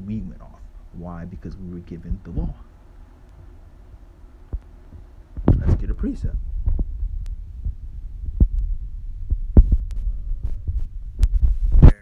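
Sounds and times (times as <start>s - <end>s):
phone handling thumps and rumble: 4.5s - 12.0s.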